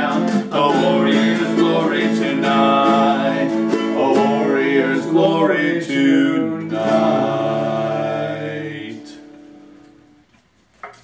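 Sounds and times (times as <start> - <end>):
acoustic guitar and ukulele chord: 0.0 - 10.2.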